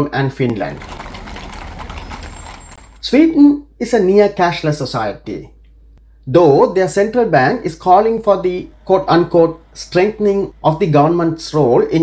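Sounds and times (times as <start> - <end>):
low traffic rumble: 0.4 - 3.4, 6.8 - 12.0.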